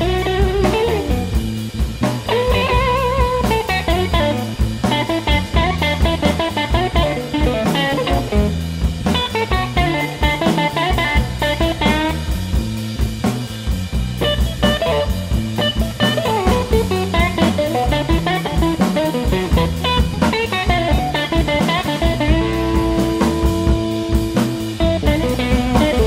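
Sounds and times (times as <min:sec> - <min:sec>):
bass: 0:00.0 - 0:26.0
drum kit beat: 0:00.0 - 0:26.0
electric guitar lines: 0:00.0 - 0:26.0.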